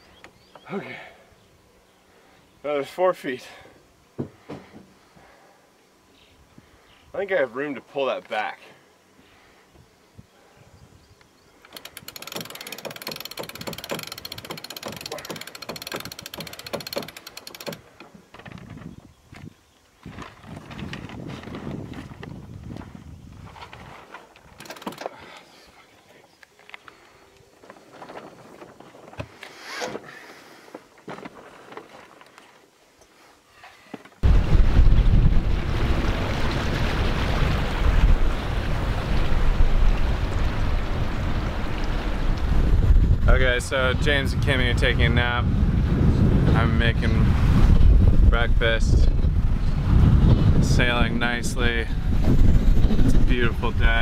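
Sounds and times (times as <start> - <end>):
winch ratcheting clicks: 11.6 - 17.8, 24.5 - 25.2
wind on microphone: 18.4 - 24.1, 34.2 - 54.0.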